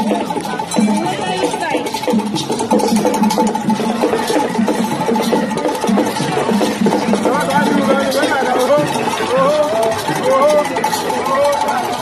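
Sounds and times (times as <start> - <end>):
drums: 0.0 - 12.0
wooden knocking instrument: 0.0 - 12.0.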